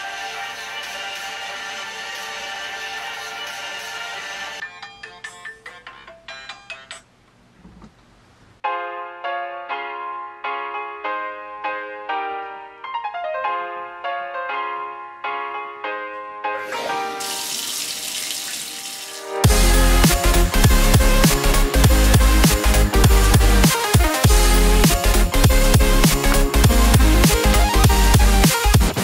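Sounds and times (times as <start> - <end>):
shower water running: 16.6 - 21.3
electronic music chords: 19.1 - 29.0.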